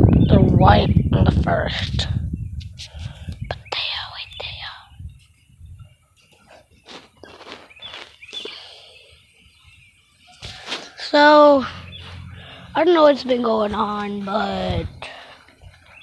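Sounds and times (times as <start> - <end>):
person whispering: 3.5 - 5.0.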